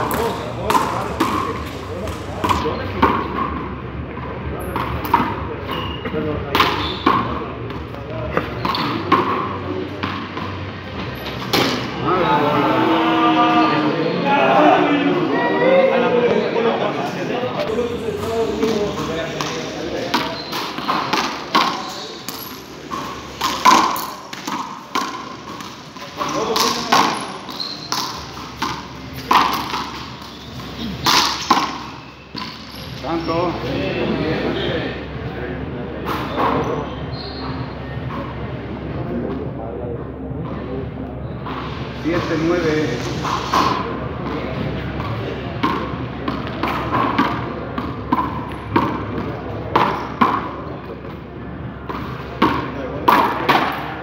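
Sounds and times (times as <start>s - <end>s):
ball smacking court walls: 18.2s - 32.8s.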